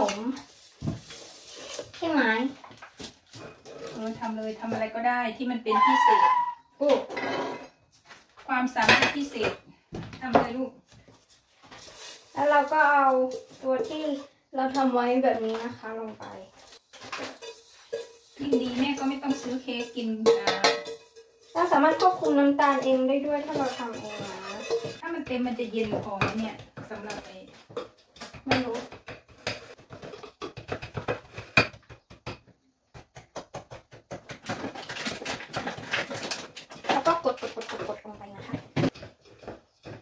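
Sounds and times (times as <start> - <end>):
wooden spoon scraping a saucepan: 0.0 - 5.0, 11.0 - 32.0, 34.0 - 40.0.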